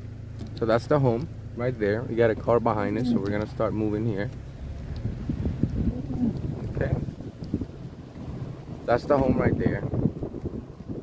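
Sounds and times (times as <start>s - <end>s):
car rumbling from inside cabin: 0.0s - 11.0s
wind buffeting microphone: 4.6s - 11.0s.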